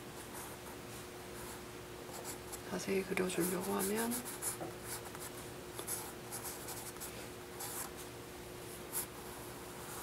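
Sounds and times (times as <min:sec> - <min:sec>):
pencil sketching on paper: 0:03.3 - 0:05.0.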